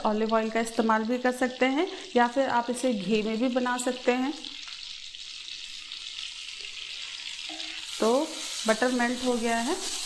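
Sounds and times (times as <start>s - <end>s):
butter sizzling in a frying pan: 0.0s - 10.0s.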